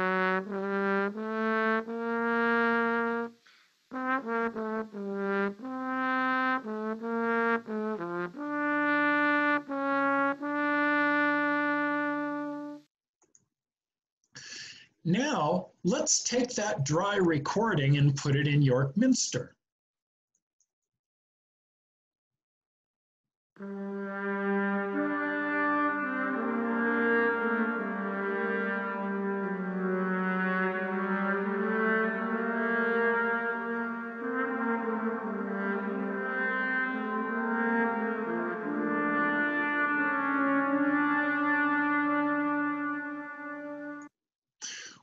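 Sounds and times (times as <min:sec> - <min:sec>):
reverberant trombone melody: 0:00.0 - 0:12.9, 0:23.6 - 0:44.1.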